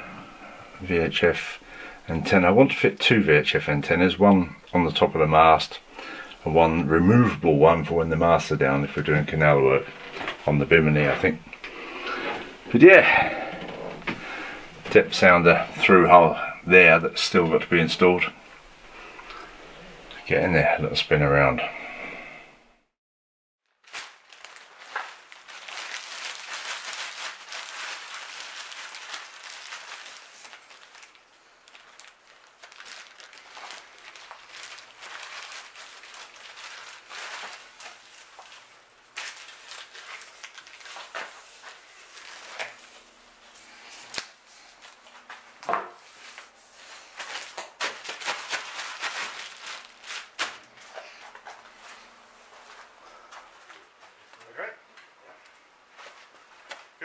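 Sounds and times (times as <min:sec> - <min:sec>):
plastic crinkling: 0:07.7 - 0:20.3, 0:23.7 - 0:57.0.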